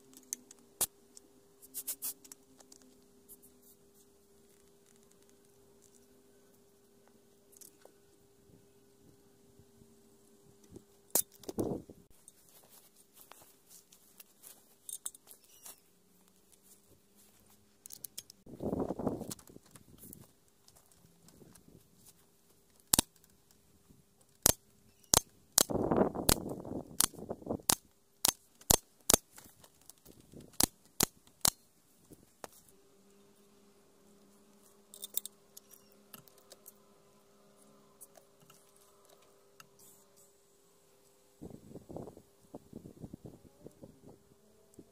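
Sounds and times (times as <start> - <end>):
low steady hum: 0.0 - 44.9
hands handling tools clicking: 34.9 - 36.8.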